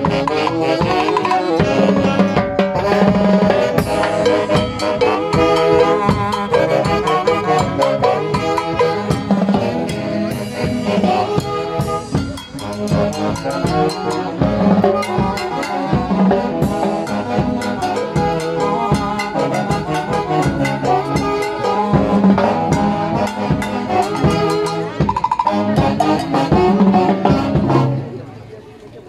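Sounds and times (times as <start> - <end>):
drum kit: 0.0 - 28.1
cymbals: 0.0 - 28.4
saxophone section melody: 0.0 - 28.4.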